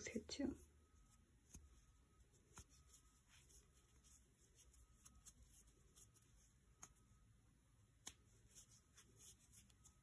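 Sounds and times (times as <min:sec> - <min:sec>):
crochet hook handling sounds: 0:00.0 - 0:10.0.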